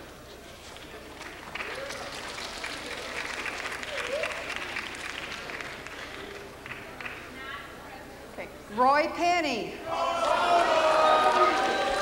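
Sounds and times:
audience cheering: 0:09.9 - 0:12.0.

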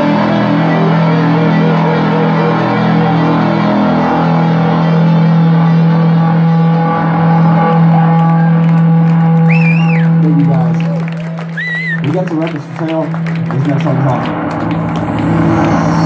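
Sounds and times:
high whistle: 0:09.4 - 0:10.2, 0:11.5 - 0:12.0.

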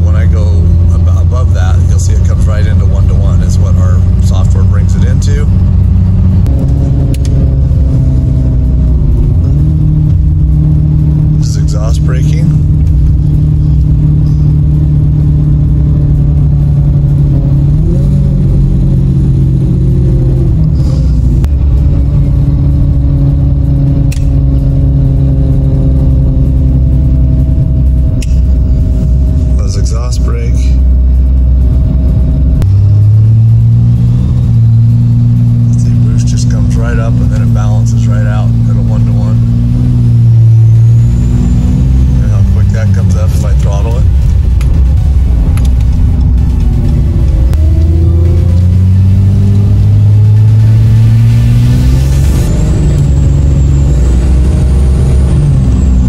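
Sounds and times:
diesel engine drone from cab: 0:00.0 - 0:56.0
exhaust brake: 0:20.5 - 0:21.6.

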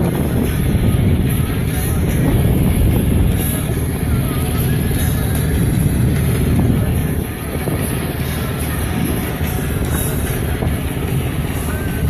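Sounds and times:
boat engine rumble: 0:00.0 - 0:12.0
music playing: 0:00.0 - 0:12.0.

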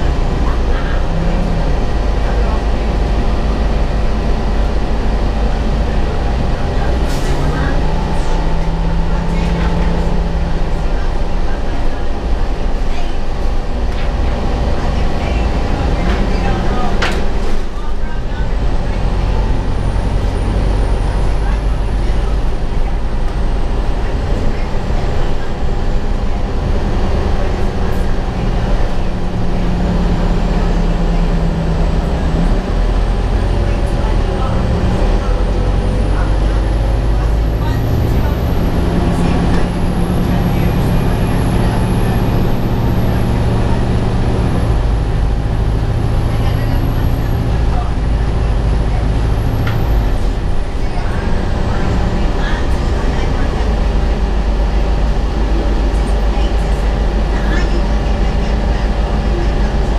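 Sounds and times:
bus engine and road drone: 0:00.0 - 0:59.9.

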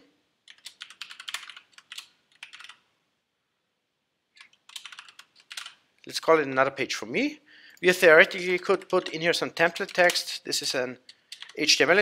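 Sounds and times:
computer keyboard typing: 0:00.4 - 0:02.8, 0:04.4 - 0:05.8, 0:08.6 - 0:10.3, 0:11.0 - 0:11.6.

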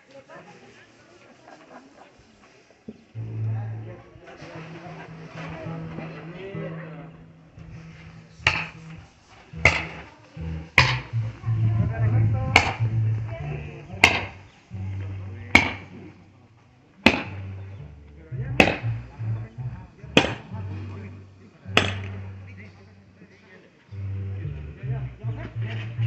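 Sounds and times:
music with low bass line: 0:03.2 - 0:16.3, 0:17.1 - 0:23.0, 0:23.9 - 0:26.0
sharp chopping strikes: 0:08.4 - 0:09.0, 0:09.6 - 0:11.3, 0:12.5 - 0:13.0, 0:14.0 - 0:14.4, 0:15.5 - 0:16.0, 0:17.0 - 0:17.6, 0:18.5 - 0:19.2, 0:20.2 - 0:21.0, 0:21.8 - 0:22.4.

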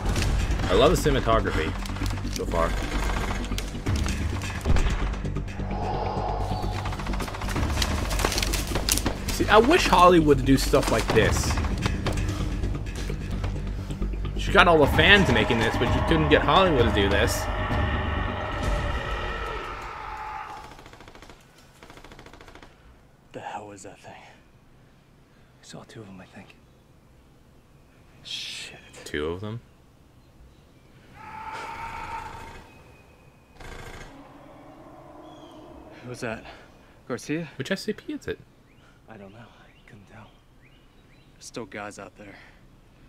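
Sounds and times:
low droning music: 0:00.0 - 0:20.5, 0:34.0 - 0:36.9.

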